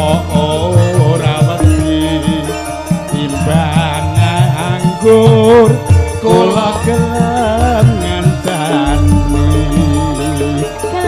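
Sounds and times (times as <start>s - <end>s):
drums: 0.0s - 11.0s
gamelan: 0.0s - 11.0s
person singing with vibrato: 0.0s - 11.0s.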